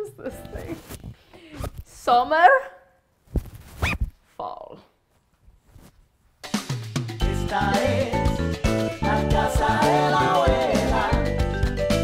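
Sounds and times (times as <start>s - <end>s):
woman speaking playfully: 2.0s - 2.9s.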